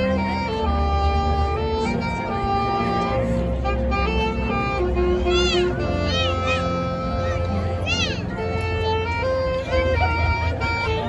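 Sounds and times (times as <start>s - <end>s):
marching band holding notes: 0.0s - 11.0s.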